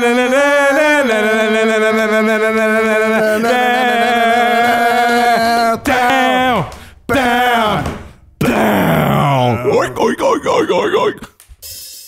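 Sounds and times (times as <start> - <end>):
man groaning: 8.4 - 11.3.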